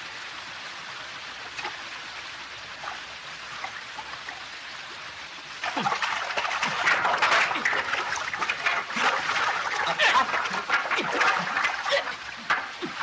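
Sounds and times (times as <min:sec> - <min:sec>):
river flowing over rocks: 0:01.1 - 0:13.0
people splashing through water: 0:05.6 - 0:13.0.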